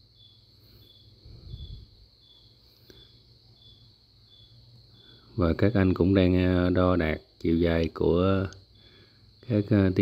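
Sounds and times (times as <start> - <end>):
insect chirping: 0.0 - 10.0
steady high hum: 0.0 - 10.0.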